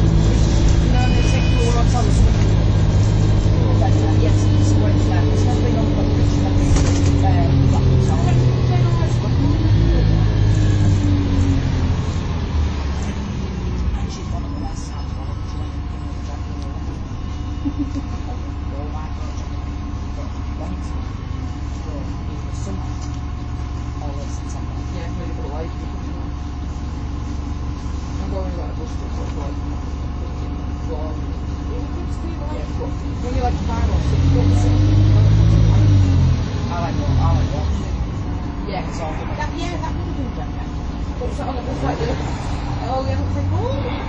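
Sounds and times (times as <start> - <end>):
bus diesel engine droning: 0.0 - 44.0.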